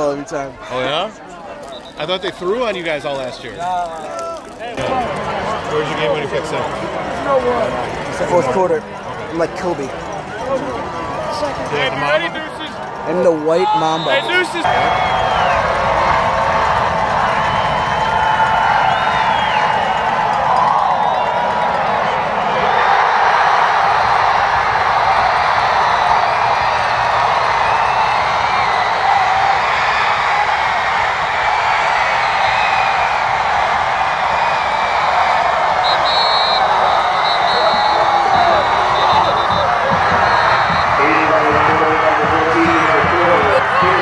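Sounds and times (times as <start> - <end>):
crowd cheering and yelling: 0.0 - 44.0.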